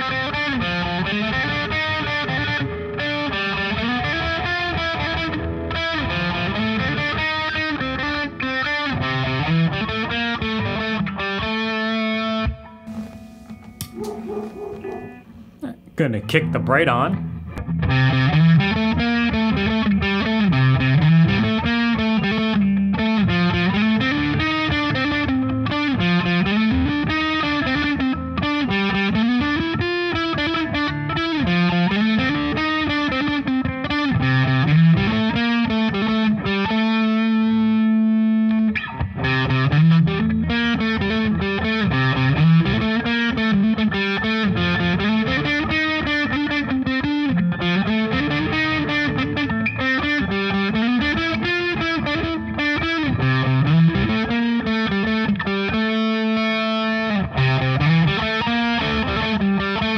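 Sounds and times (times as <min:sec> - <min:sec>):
distorted electric guitar riff: 0:00.0 - 0:59.9.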